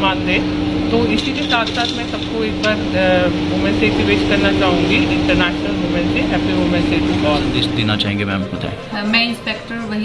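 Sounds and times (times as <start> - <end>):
low mechanical hum: 0.0 - 10.0
woman talking: 8.8 - 10.0.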